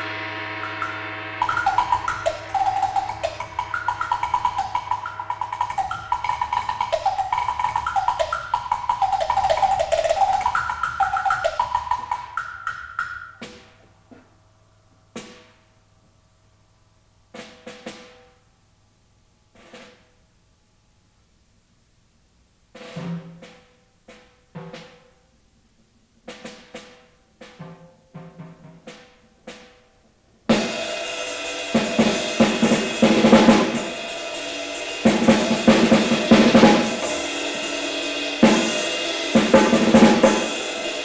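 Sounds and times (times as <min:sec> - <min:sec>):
ringing note: 0:00.0 - 0:12.6
drum rolls and strokes: 0:00.0 - 0:14.2, 0:17.3 - 0:18.4, 0:19.5 - 0:20.2, 0:22.7 - 0:25.2, 0:26.2 - 0:29.9, 0:30.5 - 0:41.0.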